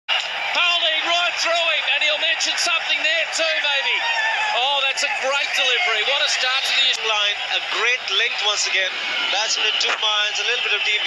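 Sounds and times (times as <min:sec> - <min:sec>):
excited raised voices: 0:00.1 - 0:11.0.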